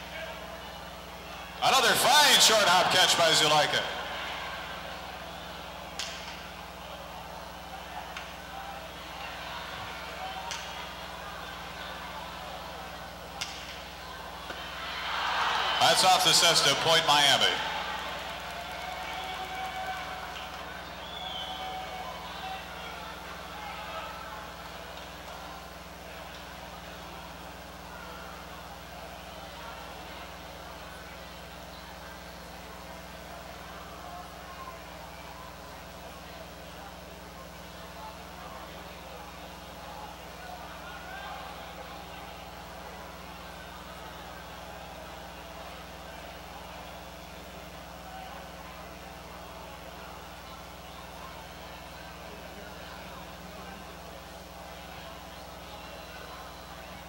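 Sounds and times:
murmur of voices: 0.0 - 57.0
steady low hum: 0.0 - 57.0.

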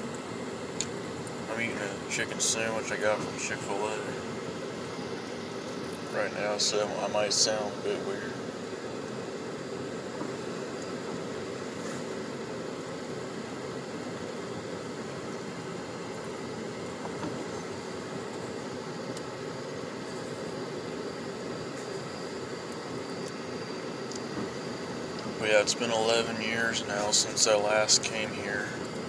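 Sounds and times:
steady rushing noise: 0.0 - 29.0.

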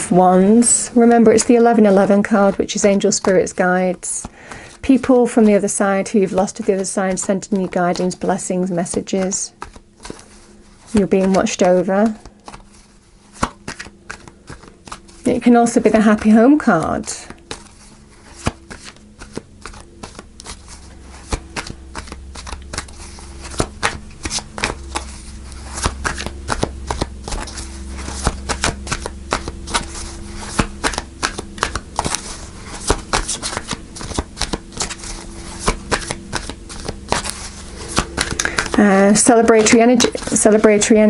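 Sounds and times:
cards being shuffled by hand: 0.0 - 41.0.

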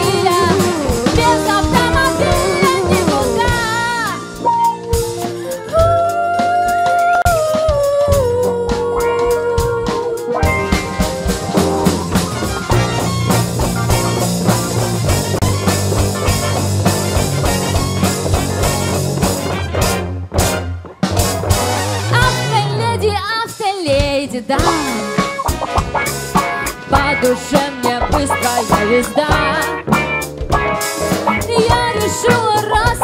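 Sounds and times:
trombone: 0.0 - 4.8, 10.4 - 23.0, 24.6 - 33.0
trumpet: 0.0 - 4.9, 10.4 - 23.3, 24.6 - 30.0
saxophone: 0.0 - 20.0, 21.6 - 23.5, 24.6 - 30.0
electric guitar: 0.0 - 23.5, 24.1 - 33.0
bass guitar: 0.0 - 33.0
drum kit: 0.0 - 33.0.

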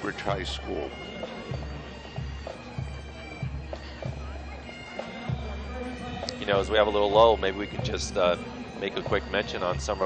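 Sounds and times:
bagpipes playing: 0.0 - 10.0.

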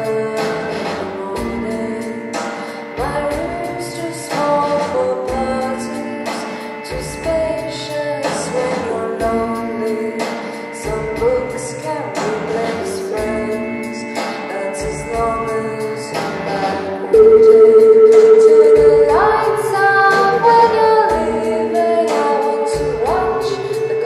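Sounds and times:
keyboards: 0.0 - 24.0
woman singing: 0.0 - 24.0
steady drum beat: 17.2 - 21.7.

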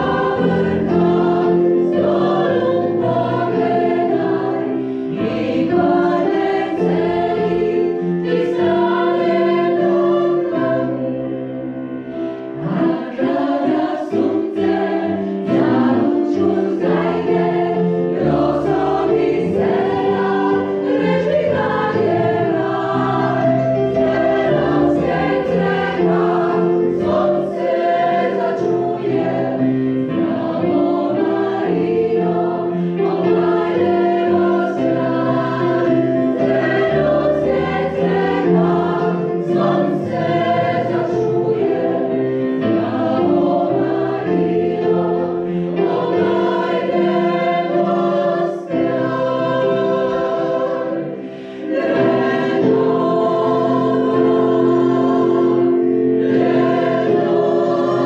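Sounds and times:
choir singing sustained chords: 0.0 - 58.0.

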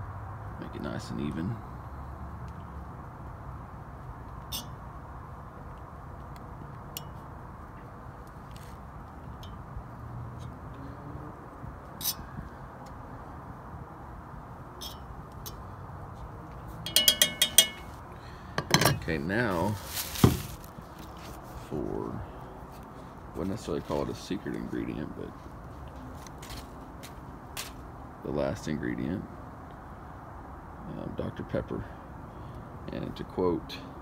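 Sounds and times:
fork clinking on tin can: 16.9 - 17.9
fork scraping cast iron pot: 18.6 - 19.1.

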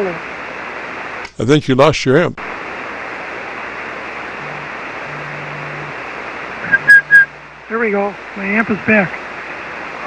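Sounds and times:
faint low hum: 0.0 - 10.0
radio static hiss: 0.0 - 10.0
brief high beep: 6.6 - 7.3.

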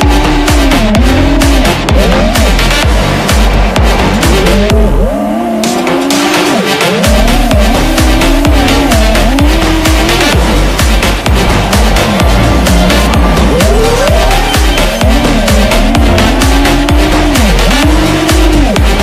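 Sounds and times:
drone motors whining: 0.0 - 19.0
electronic dance music: 0.0 - 19.0.

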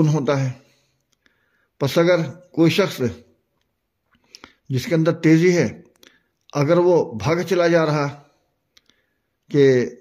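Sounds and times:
man speaking: 0.0 - 0.9, 1.8 - 3.4, 4.4 - 8.4, 9.4 - 10.0.

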